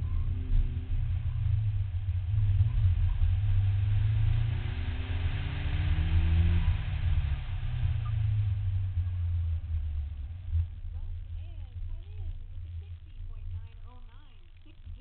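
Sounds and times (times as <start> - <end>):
car engine revving: 0.0 - 15.0
road noise: 0.0 - 15.0.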